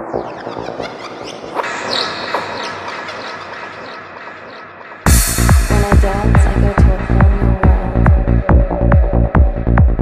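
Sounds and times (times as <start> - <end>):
swooping chirping synth effects: 0.0 - 6.7
synthesizer noise wash: 0.0 - 8.4.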